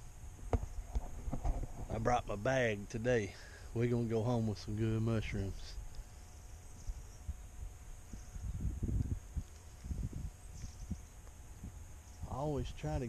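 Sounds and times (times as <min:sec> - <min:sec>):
wind rumbling on microphone: 0:00.0 - 0:02.4, 0:04.3 - 0:13.0
faint high chirping: 0:05.3 - 0:12.9.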